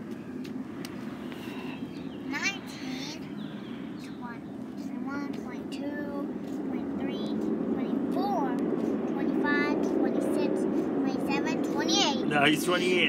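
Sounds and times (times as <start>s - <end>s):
low engine rumble: 0.0s - 13.0s.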